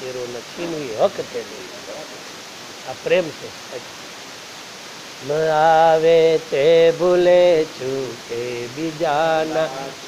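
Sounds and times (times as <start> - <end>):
man speaking: 0.0 - 2.2, 2.8 - 3.9
low hiss of room noise: 0.0 - 10.0.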